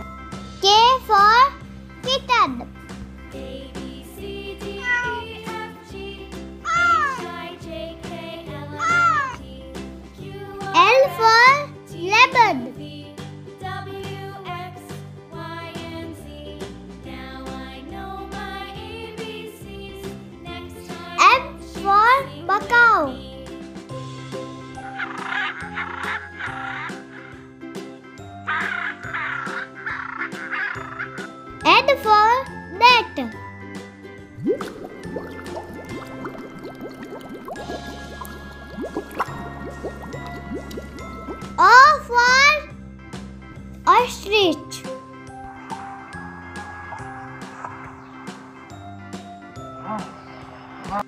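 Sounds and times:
children's background music: 0.0s - 51.0s
kitten meowing: 4.8s - 5.2s
macaw squawking: 25.0s - 27.2s, 28.5s - 31.4s.

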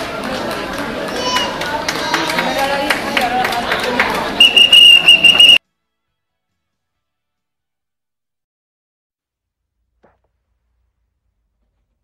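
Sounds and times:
crowd voices: 0.0s - 5.6s
shrill whistle blasts: 4.4s - 5.6s.

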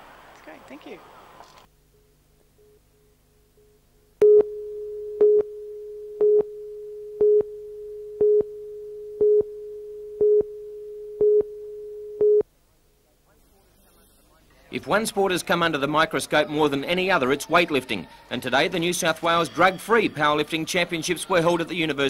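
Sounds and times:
short beeps: 4.2s - 12.4s.

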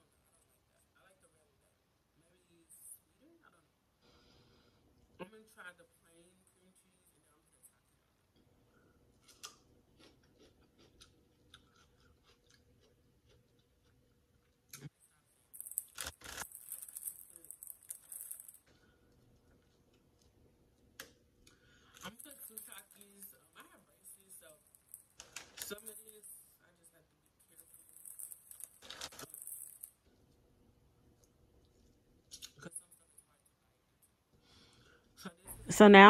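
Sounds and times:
person chewing crunchy food: 9.2s - 15.0s, 15.8s - 17.1s
plastic bag crinkling: 15.5s - 19.3s, 24.8s - 26.2s, 27.5s - 30.2s.

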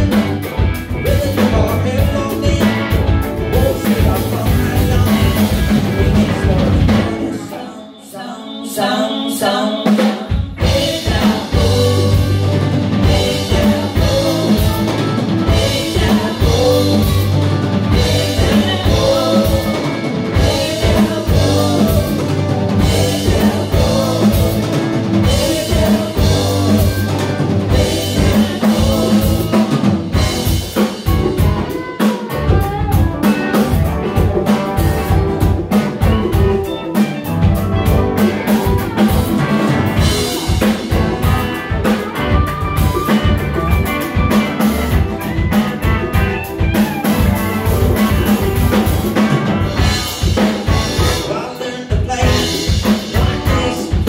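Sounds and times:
electric bass: 0.0s - 7.4s, 10.6s - 54.0s
drum kit beat: 0.0s - 7.5s, 9.8s - 54.0s
electric guitars: 0.0s - 54.0s
electric keyboard: 0.0s - 54.0s.

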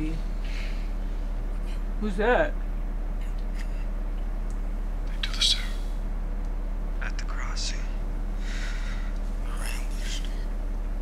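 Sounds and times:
steady low hum: 0.0s - 11.0s
person whispering: 5.1s - 5.8s, 9.4s - 10.4s.

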